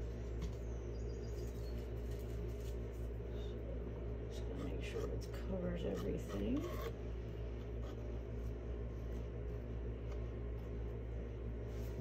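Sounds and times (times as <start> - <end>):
steady low hum: 0.0 - 12.0
faint high chirps: 0.5 - 1.9.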